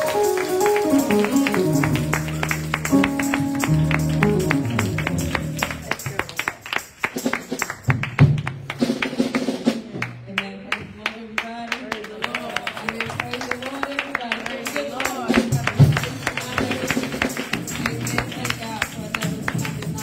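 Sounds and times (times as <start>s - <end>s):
sustained keyboard chords: 0.0s - 6.1s
drum kit steady beat: 0.0s - 10.3s, 14.9s - 20.0s.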